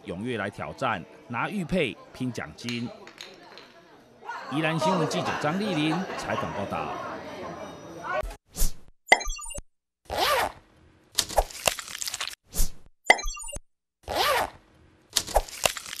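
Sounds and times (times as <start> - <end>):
sound logo pops and blips: 13.1 - 13.6.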